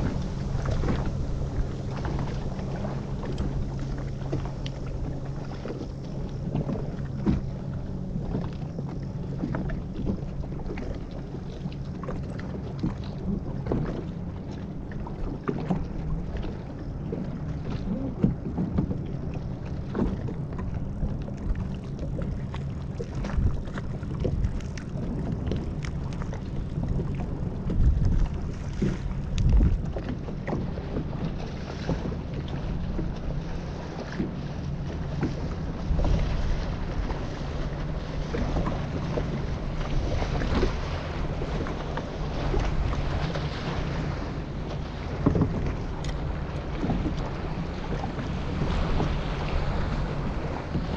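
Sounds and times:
motorboat engine humming: 0:00.0 - 0:50.9
water slapping against hull: 0:00.0 - 0:50.9
wind buffeting microphone: 0:00.0 - 0:50.9.

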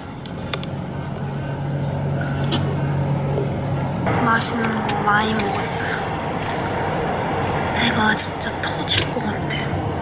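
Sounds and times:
vehicle engine and road hum: 0:00.0 - 0:10.0.

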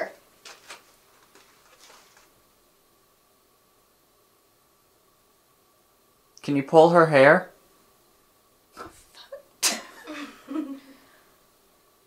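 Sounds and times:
person sneezing: 0:08.8 - 0:10.4.

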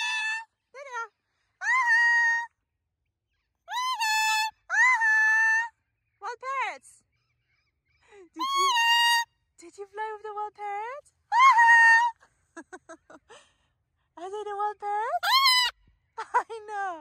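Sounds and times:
macaw squawking: 0:08.4 - 0:09.3, 0:15.1 - 0:15.8.

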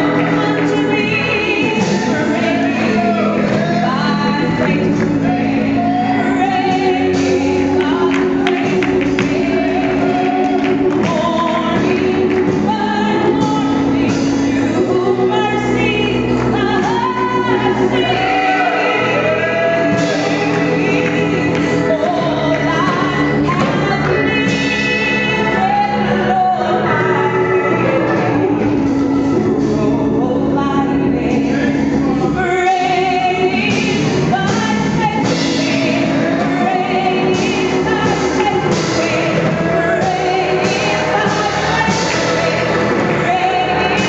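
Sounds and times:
steady musical accompaniment: 0:00.0 - 0:44.0
woman singing gospel solo: 0:00.0 - 0:44.0.

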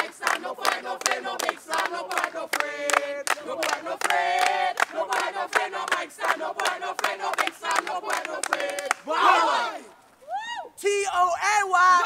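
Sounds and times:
young voices chanting in unison: 0:00.0 - 0:10.0
group yell: 0:09.1 - 0:10.6.

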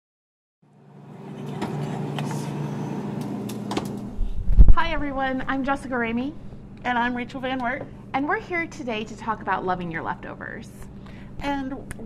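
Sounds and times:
low mechanical hum: 0:00.7 - 0:12.0.

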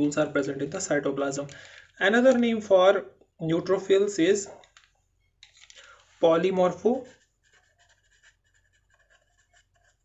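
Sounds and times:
pen scratching on paper: 0:06.9 - 0:10.0.

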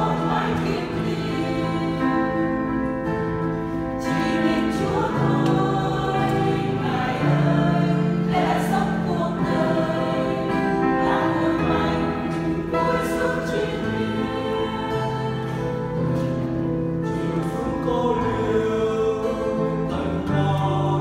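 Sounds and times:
choir singing a hymn: 0:00.0 - 0:21.0.

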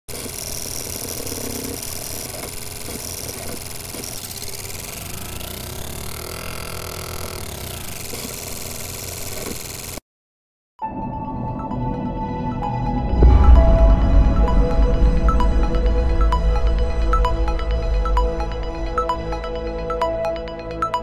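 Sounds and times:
rising and falling sweep: 0:13.1 - 0:20.0.

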